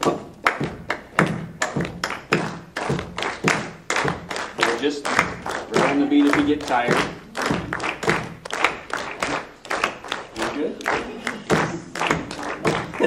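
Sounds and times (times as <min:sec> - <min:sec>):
people clapping in rhythm: 0:00.0 - 0:13.0
people patting chests: 0:00.0 - 0:13.0
people stomping feet: 0:00.0 - 0:13.0.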